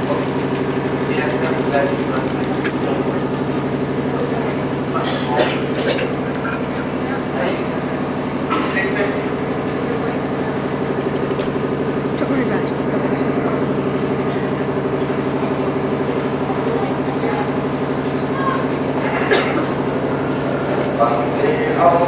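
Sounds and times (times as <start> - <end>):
faint voices: 0.0 - 22.0.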